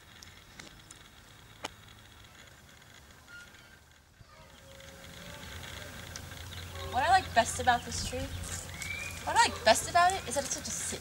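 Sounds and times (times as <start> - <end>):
low steady rumble: 0.0 - 11.0
faint high chirp: 3.2 - 3.8, 8.7 - 9.3.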